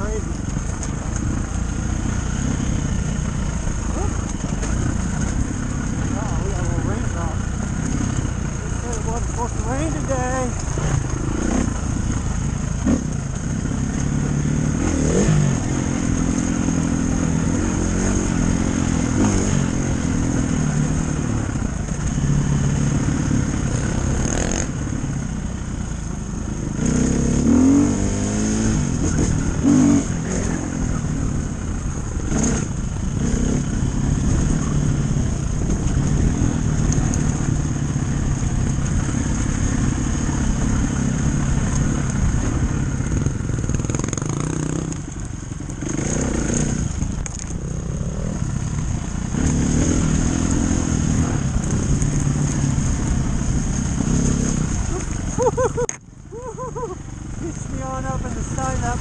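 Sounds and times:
dirt bike engine revving: 0:01.2 - 0:25.1, 0:26.6 - 0:55.9.

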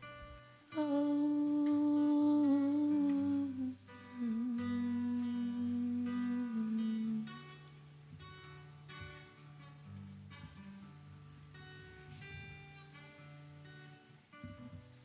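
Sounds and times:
acoustic guitar chords: 0:00.0 - 0:15.0
woman humming: 0:00.7 - 0:07.5.

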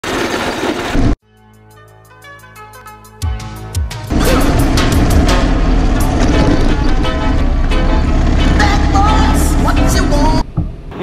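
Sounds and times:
go-kart engine: 0:00.0 - 0:01.2, 0:04.1 - 0:10.4
background music with light beat: 0:01.3 - 0:05.6.

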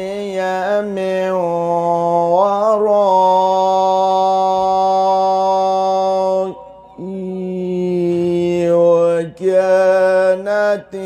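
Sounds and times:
man reciting melodically: 0:00.0 - 0:11.0.

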